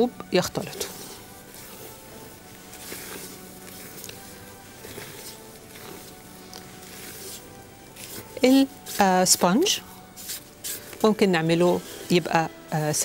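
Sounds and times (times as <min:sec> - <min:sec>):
soft background music: 0:00.0 - 0:13.0
spatula folding batter in a bowl: 0:00.5 - 0:12.8.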